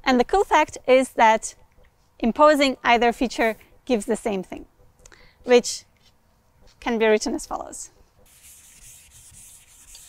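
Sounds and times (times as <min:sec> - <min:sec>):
eraser rubbing a chalkboard: 0:08.2 - 0:10.0.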